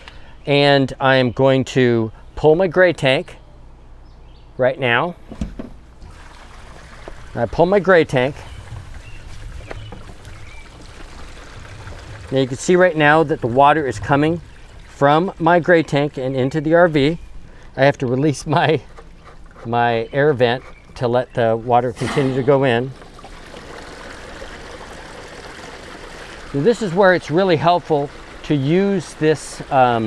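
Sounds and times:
water draining through a hose: 6.0 - 19.8, 21.2 - 30.0.

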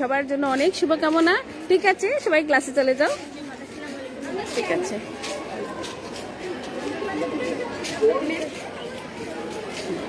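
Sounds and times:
girls chattering: 1.8 - 10.0.

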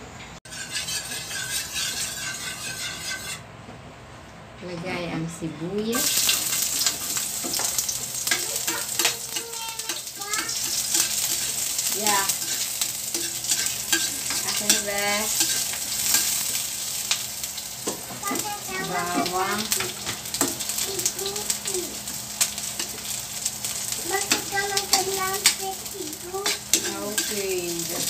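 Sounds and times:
onion sizzling in hot oil: 0.5 - 3.4, 5.9 - 28.0
spatula scraping metal wok: 0.5 - 3.5, 5.9 - 20.8, 22.0 - 28.0.

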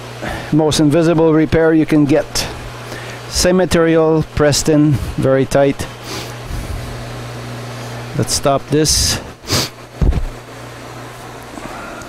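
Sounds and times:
metal lathe motor humming: 2.1 - 12.0.

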